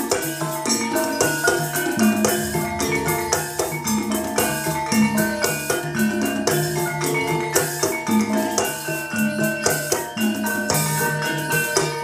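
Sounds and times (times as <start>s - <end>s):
drumming: 0.0s - 12.0s
jingling percussion: 0.0s - 12.0s
struck metallophones ringing: 0.0s - 12.0s.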